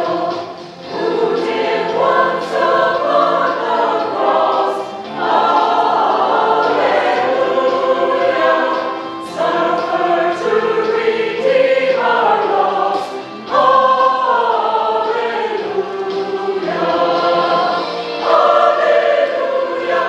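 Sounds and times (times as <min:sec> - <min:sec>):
choir singing: 0:00.0 - 0:20.0.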